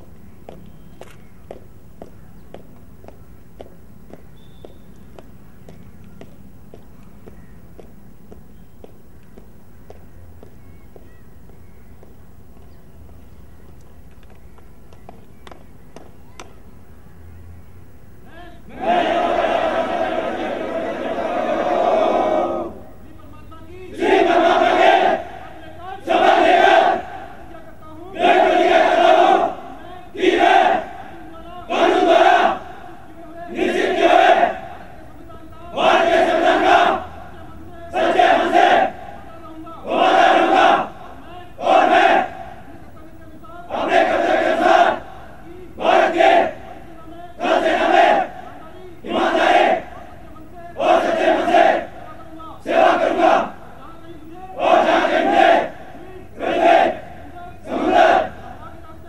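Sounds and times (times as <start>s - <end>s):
soldiers shouting in unison: 18.6s - 22.9s, 23.9s - 35.0s, 35.7s - 42.7s, 43.7s - 53.8s, 54.6s - 58.7s.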